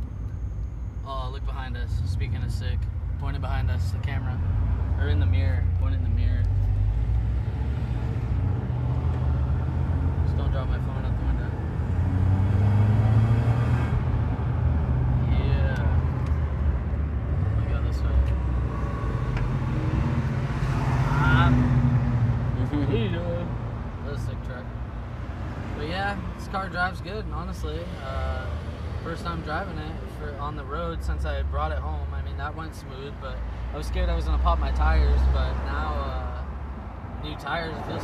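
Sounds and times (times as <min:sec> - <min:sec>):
car engine and exhaust drone: 0:00.0 - 0:38.0
road and tyre noise: 0:00.0 - 0:38.0.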